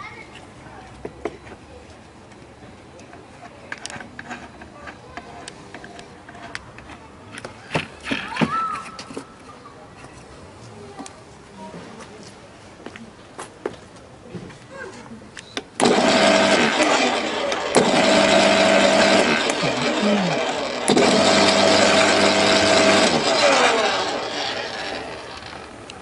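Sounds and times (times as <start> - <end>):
garden shredder motor whining: 15.8 - 26.0.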